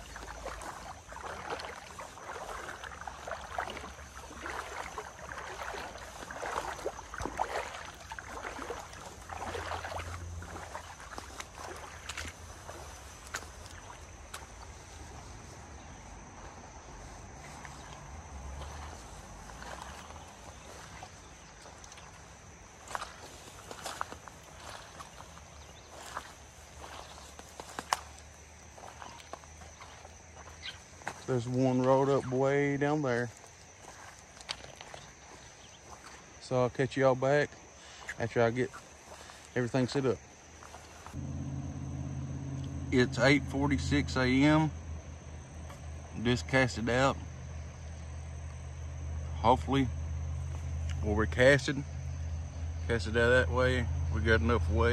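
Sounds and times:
wading through shallow water: 0.0s - 54.9s.

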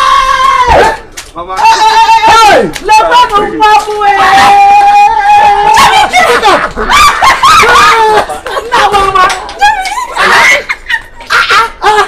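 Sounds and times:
woman's high excited cry: 4.6s - 8.9s.

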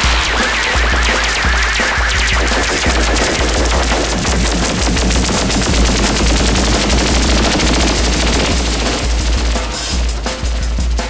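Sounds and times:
electronic synthesizer music: 0.0s - 10.8s.

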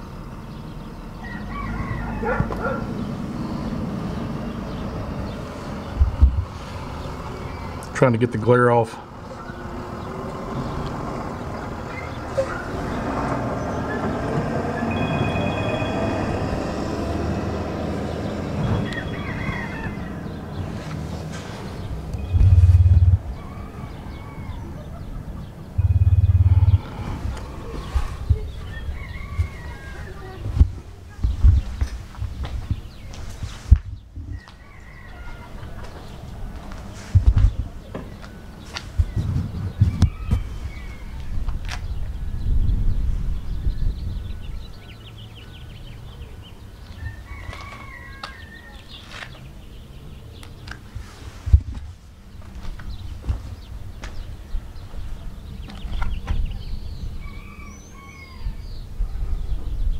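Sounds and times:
steady outdoor rush: 0.0s - 59.9s
loud low rumbles: 9.2s - 24.6s, 25.6s - 29.8s
bird chirps: 18.1s - 30.4s.

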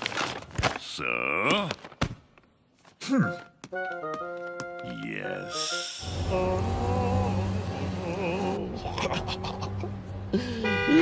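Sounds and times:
background music with held notes: 3.2s - 8.6s.

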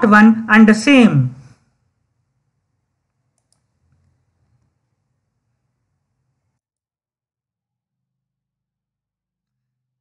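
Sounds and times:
faint clicks: 3.1s - 4.8s.

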